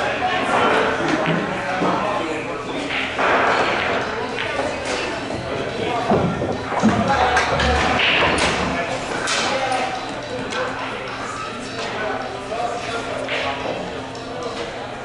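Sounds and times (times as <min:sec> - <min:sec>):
background voices talking: 0:04.4 - 0:11.1.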